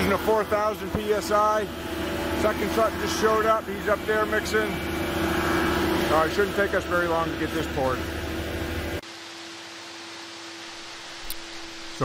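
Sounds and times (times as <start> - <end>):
concrete mixer truck engine rumble: 0.0 - 9.0
steady hiss: 10.0 - 12.0.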